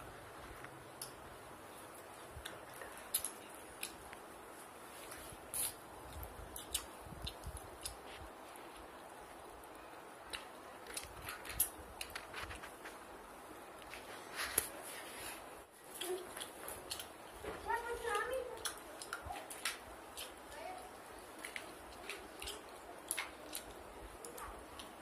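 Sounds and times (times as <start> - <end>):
faint hiss: 0.0 - 10.8
small clicks and rustles: 9.7 - 25.0.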